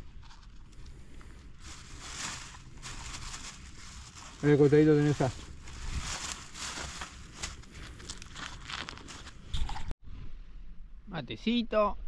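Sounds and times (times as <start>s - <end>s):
hands handling fried food and paper: 0.3s - 9.4s.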